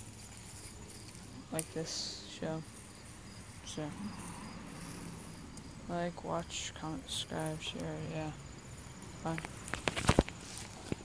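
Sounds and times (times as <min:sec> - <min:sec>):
insects chirping: 0:00.0 - 0:11.0.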